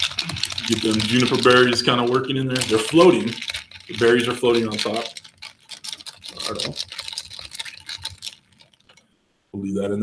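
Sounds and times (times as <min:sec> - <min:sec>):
liquid swishing: 0:00.0 - 0:09.1.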